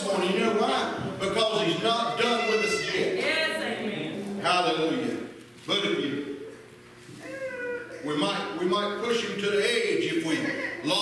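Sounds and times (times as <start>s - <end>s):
man speaking: 0.0s - 3.2s
short high-pitched call: 2.2s - 3.1s.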